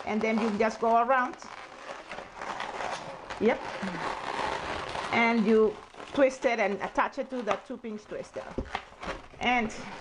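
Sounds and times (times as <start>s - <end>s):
balloons rubbing together: 0.0s - 7.4s, 8.1s - 10.0s.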